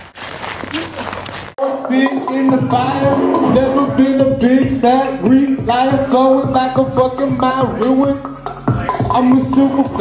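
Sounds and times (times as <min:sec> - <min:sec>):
hip-hop beat: 0:01.6 - 0:10.0
person rapping: 0:01.6 - 0:10.0.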